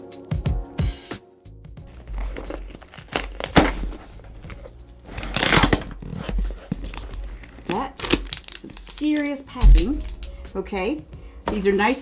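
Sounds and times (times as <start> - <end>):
cardboard box flaps tearing open: 1.9 - 8.4
knife slitting packing tape: 2.0 - 9.0.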